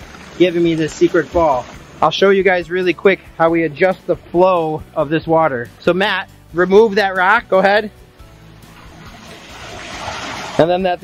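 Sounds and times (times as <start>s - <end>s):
water gushing into pond: 0.0s - 2.0s, 8.6s - 10.8s.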